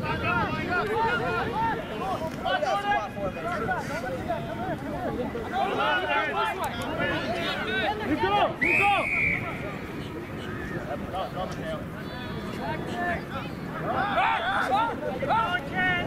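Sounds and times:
players shouting: 0:00.0 - 0:16.0.

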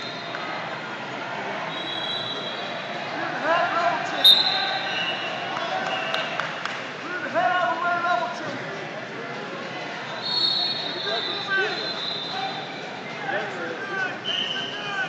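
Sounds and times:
voices shouting in a hall: 0:00.0 - 0:08.5, 0:09.8 - 0:15.0.

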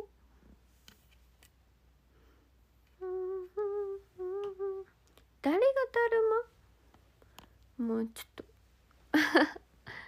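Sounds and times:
woman humming: 0:03.0 - 0:05.0.

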